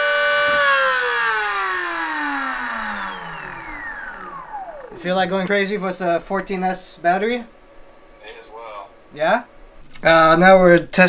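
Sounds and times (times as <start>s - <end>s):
electric motors whining: 0.0s - 8.1s.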